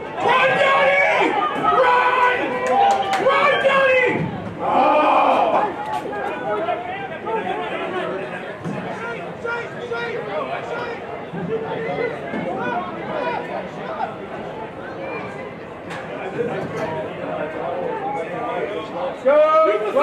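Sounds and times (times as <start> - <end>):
people shouting: 0.0 - 7.9
chatter: 0.0 - 20.0.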